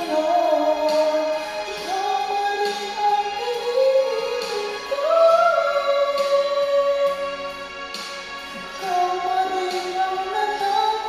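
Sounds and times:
man singing into a microphone: 0:00.0 - 0:07.3, 0:08.7 - 0:11.0
instrumental accompaniment: 0:00.0 - 0:11.0.

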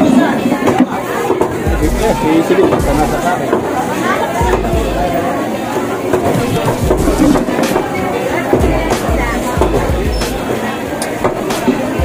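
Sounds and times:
people chattering: 0:00.0 - 0:12.0
music playing: 0:01.5 - 0:12.0
low thuds: 0:08.6 - 0:10.4.

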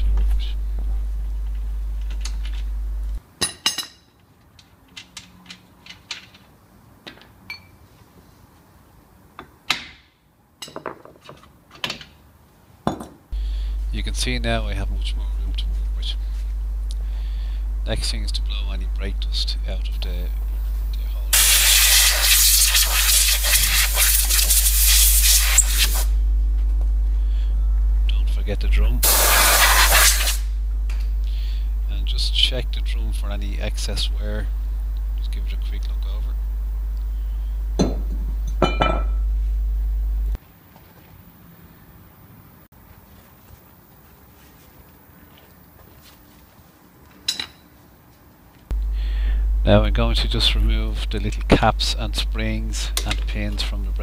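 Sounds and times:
steady low hum: 0:00.0 - 0:03.3, 0:13.2 - 0:40.4, 0:48.6 - 0:54.0
compressed air blast: 0:21.3 - 0:26.2, 0:29.0 - 0:30.5
metal clinks and knocks: 0:37.8 - 0:39.2.

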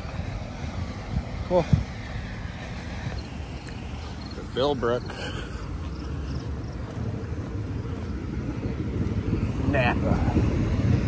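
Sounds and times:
low rumble of street traffic: 0:00.0 - 0:11.0.

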